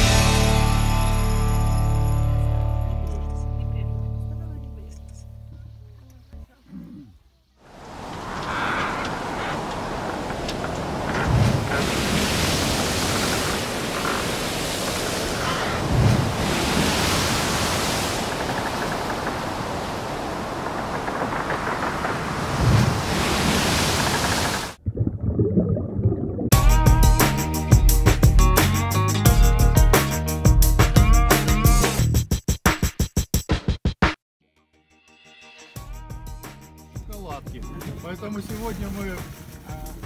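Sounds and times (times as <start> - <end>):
background music: 0.0 - 5.0, 26.6 - 32.2, 34.4 - 40.0.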